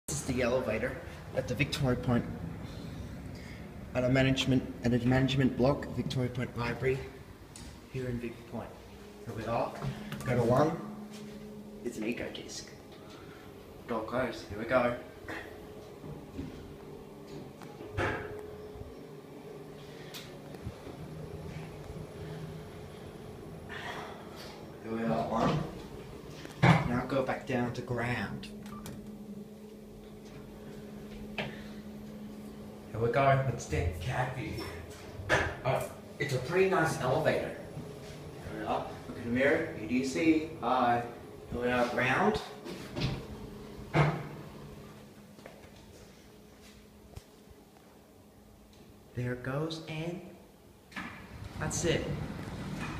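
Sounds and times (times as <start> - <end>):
elevator ride hum: 0.1 - 49.2, 50.4 - 52.9.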